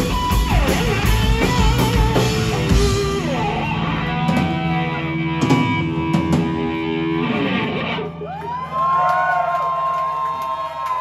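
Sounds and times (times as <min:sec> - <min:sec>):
live rock band: 0:00.0 - 0:09.0.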